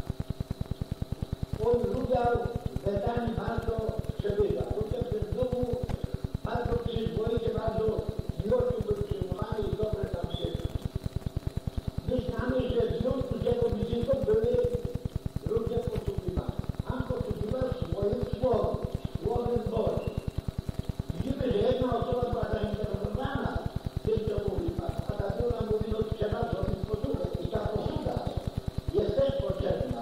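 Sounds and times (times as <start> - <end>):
low pulsing in recording: 0.0 - 30.0
person speaking: 1.6 - 10.8, 12.0 - 20.2, 21.1 - 30.0.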